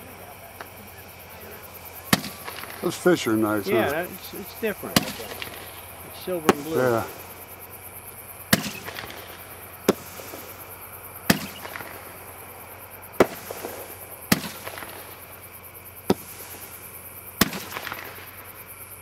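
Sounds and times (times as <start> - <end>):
fireworks bangs with echo: 0.0 - 18.7.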